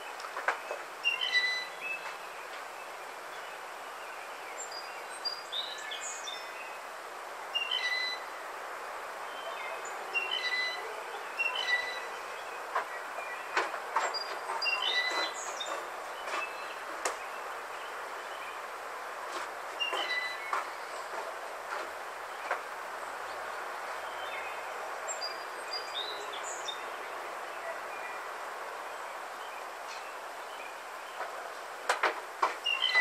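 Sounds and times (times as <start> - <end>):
blue jay squeaky calls: 1.0 - 1.8, 7.6 - 8.3, 10.2 - 10.8, 11.4 - 12.2, 14.2 - 15.8, 19.8 - 20.9, 32.6 - 33.0.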